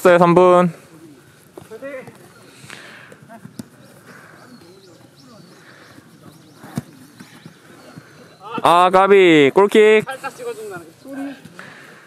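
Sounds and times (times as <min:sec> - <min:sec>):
distant players shouting: 0:03.2 - 0:09.4.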